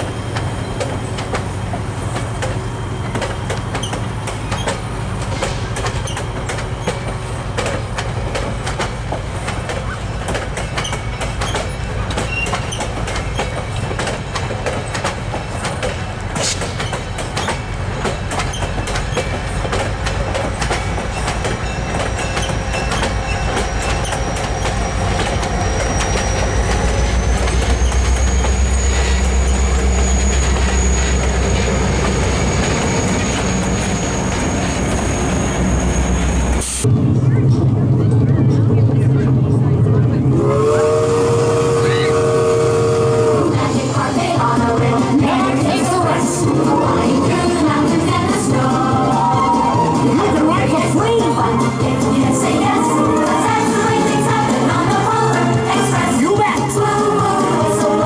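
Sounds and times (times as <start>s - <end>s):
train wheels clicking on rail joints: 0.0s - 36.9s
diesel locomotive engine rumble: 0.0s - 58.0s
high wheel squeal: 2.1s - 7.7s, 9.4s - 36.8s.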